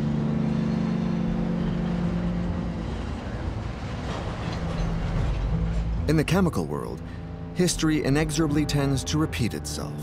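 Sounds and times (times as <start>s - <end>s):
freight train rolling past: 0.0s - 8.8s.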